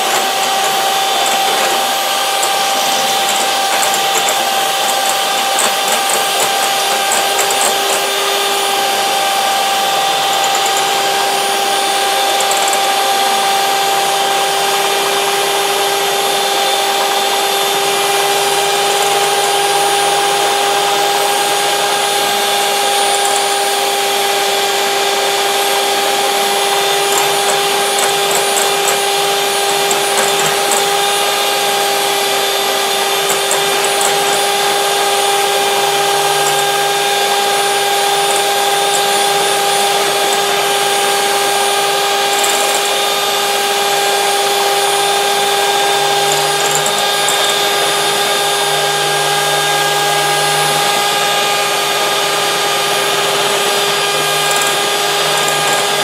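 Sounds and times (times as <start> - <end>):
beaters whisking in glass bowl: 0.0 - 13.7, 16.9 - 20.5, 22.5 - 24.6, 25.4 - 43.5, 45.5 - 48.0, 54.0 - 56.0
electric hand mixer whining: 0.0 - 56.0.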